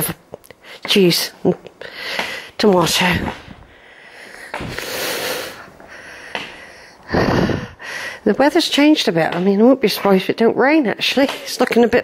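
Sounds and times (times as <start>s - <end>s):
person breathing close to microphone: 1.8s - 8.3s.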